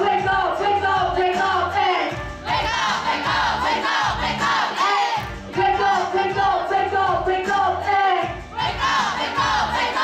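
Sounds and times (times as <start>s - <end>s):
person rapping: 0.0s - 2.2s, 5.5s - 8.4s
hip-hop backing beat: 0.0s - 10.0s
crowd shouting together: 2.5s - 5.2s, 8.6s - 10.0s.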